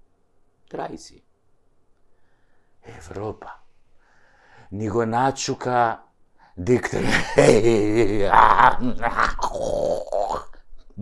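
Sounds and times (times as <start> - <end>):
man speaking: 0.7 - 1.3, 2.8 - 3.7, 4.7 - 9.1.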